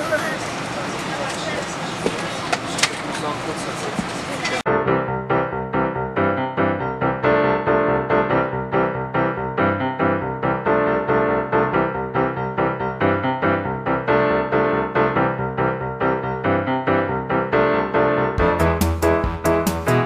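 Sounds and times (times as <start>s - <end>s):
airliner cabin noise: 0.0s - 4.7s
piano background music with beat: 4.7s - 20.0s.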